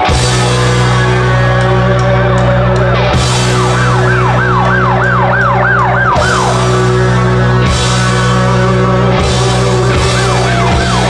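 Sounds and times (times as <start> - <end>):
sustained low bass chord: 0.0 - 11.0
siren-like rising and falling tone: 3.0 - 7.9, 10.1 - 11.0.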